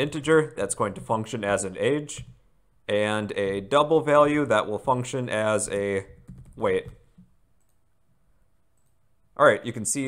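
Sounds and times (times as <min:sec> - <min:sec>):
faint keyboard clicks: 0:05.7 - 0:07.8, 0:08.8 - 0:09.0.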